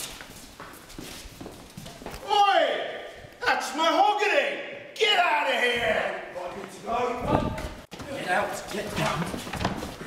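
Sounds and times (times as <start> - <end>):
hurried footsteps on hard floor: 0.0 - 2.2, 6.5 - 10.0.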